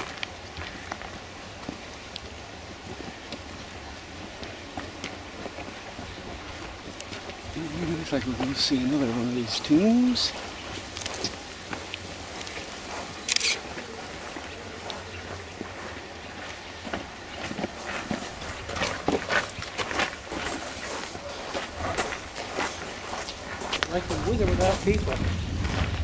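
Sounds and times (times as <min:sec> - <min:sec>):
footsteps on stone and grit: 0:00.0 - 0:26.0
faint voices: 0:00.6 - 0:19.3.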